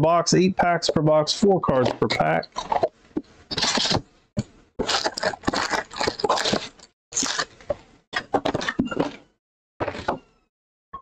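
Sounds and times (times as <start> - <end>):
cardboard and wrappers rustling: 3.5 - 4.0, 4.8 - 7.7.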